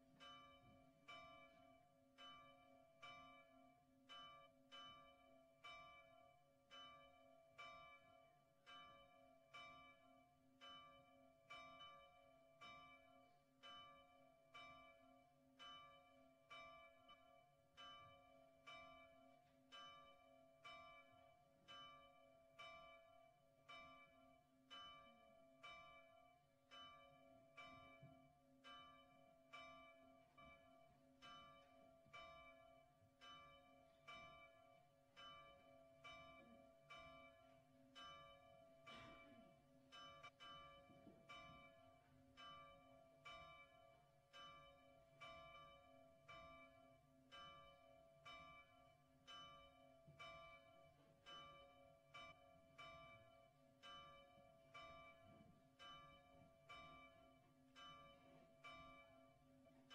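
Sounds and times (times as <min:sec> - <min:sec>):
church bell tolling: 0:00.0 - 0:59.9.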